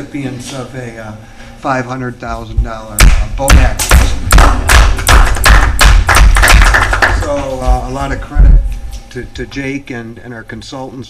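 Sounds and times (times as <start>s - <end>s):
loud thumps with low boom: 2.5s - 8.7s.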